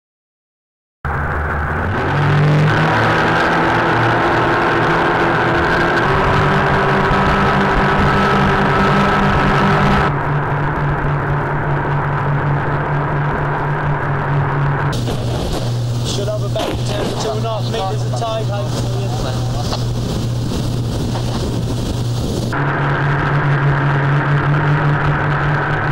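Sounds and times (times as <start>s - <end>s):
outboard engines running at speed: 1.1s - 25.9s
rush of wind and water: 1.5s - 25.9s.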